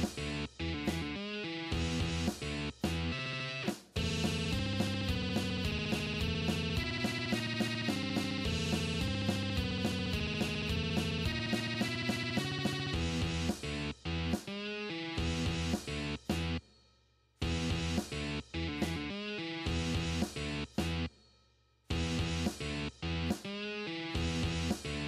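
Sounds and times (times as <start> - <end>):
electric guitar tremolo chords: 3.0 - 13.3.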